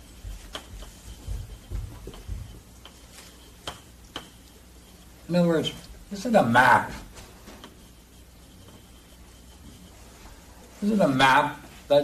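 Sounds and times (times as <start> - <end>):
chalk tapping on blackboard: 0.0 - 11.8.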